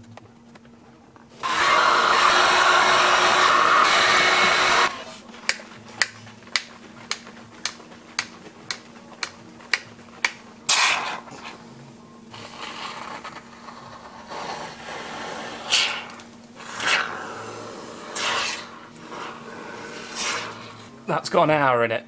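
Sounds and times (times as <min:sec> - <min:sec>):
adhesive can hissing and sputtering: 0:01.4 - 0:05.3, 0:10.2 - 0:11.6, 0:12.3 - 0:20.9.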